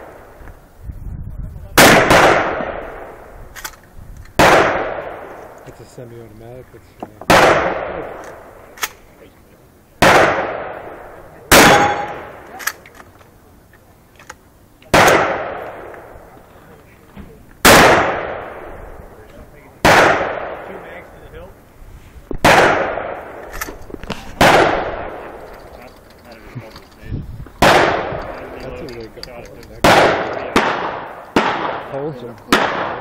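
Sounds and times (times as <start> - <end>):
shotgun shots echoing: 1.8 - 3.8, 4.4 - 5.6, 7.2 - 9.0, 10.0 - 12.9, 14.9 - 16.2, 17.6 - 19.0, 19.8 - 21.1, 22.4 - 25.8, 27.6 - 33.0.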